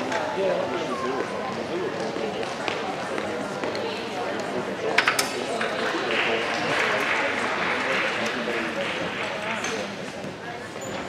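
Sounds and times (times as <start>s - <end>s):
babble of many voices: 0.0s - 11.0s.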